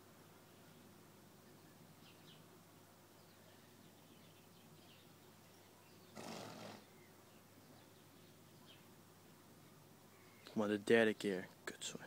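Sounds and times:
horse snorting: 6.2s - 6.9s.

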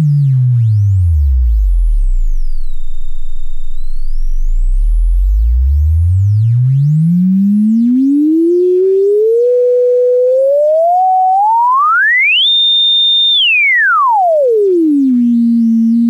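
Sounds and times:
sine tone sweeping in pitch: 0.0s - 16.0s.

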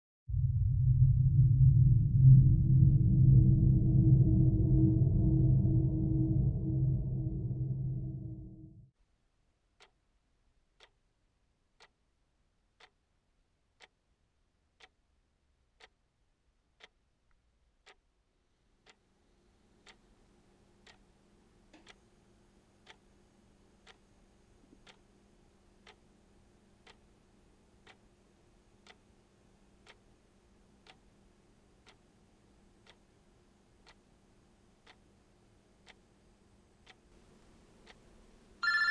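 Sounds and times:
faint room hum: 2.8s - 38.9s
clock ticking: 10.8s - 11.0s, 12.8s - 13.0s, 17.8s - 18.0s, 20.8s - 21.1s, 21.7s - 22.0s, 22.8s - 23.1s, 23.8s - 24.1s, 24.8s - 25.1s, 25.8s - 26.2s, 26.8s - 27.2s, 27.8s - 28.1s, 28.8s - 29.2s, 29.8s - 30.1s, 30.8s - 31.2s, 31.8s - 32.1s, 32.8s - 33.2s, 33.8s - 34.2s, 34.8s - 35.2s, 35.8s - 36.2s, 36.8s - 37.2s.

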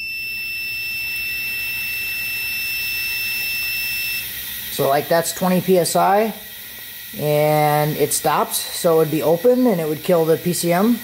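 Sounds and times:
multimeter continuity buzzer: 0.0s - 11.0s.

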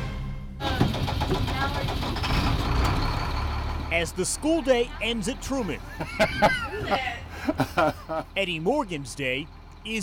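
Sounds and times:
vehicle engine idling: 0.6s - 10.0s
voices chattering: 3.8s - 10.0s.

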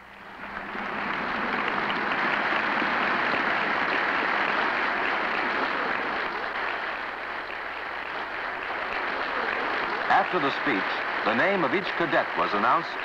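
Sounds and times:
large audience applauding: 0.0s - 13.0s.

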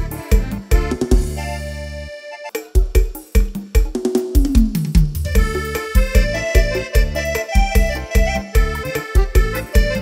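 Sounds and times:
kick drum beat: 0.0s - 1.4s, 2.6s - 10.0s
held melody line: 0.0s - 3.4s, 5.2s - 10.0s.

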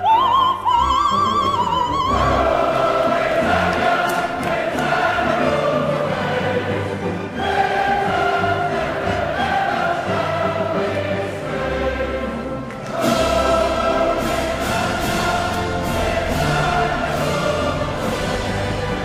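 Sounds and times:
large choir singing: 0.0s - 19.0s
orchestra playing: 0.0s - 19.0s.

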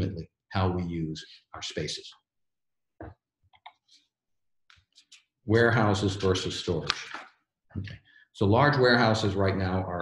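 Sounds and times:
person speaking: 5.0s - 10.0s.

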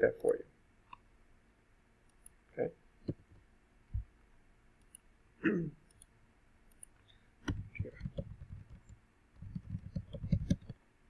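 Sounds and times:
computer keyboard typing: 7.5s - 10.8s.

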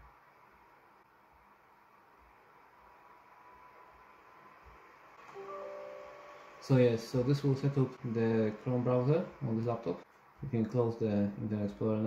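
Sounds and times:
computer system chime: 5.3s - 7.0s.

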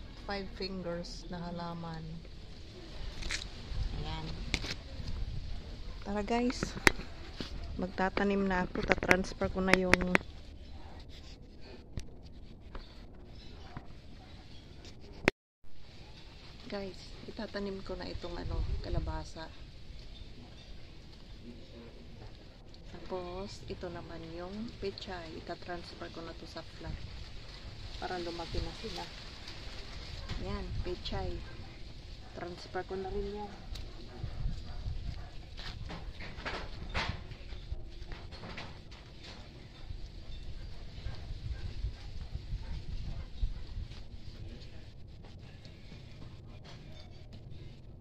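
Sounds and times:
low wind rumble: 0.0s - 15.2s, 15.8s - 48.0s
rustling of dry garden litter: 15.8s - 48.0s.

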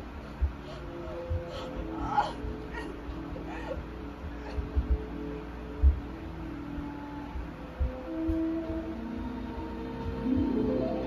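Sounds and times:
background music: 0.0s - 11.0s
whimpering cries: 0.4s - 5.1s.

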